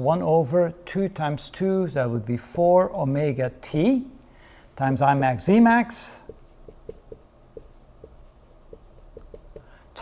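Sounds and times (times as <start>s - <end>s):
marker squeaking on whiteboard: 6.2s - 9.8s.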